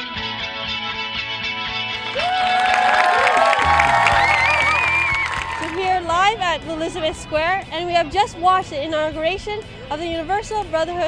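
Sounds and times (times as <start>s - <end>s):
music: 0.0s - 11.0s
crowd cheering and calling out: 2.0s - 6.1s.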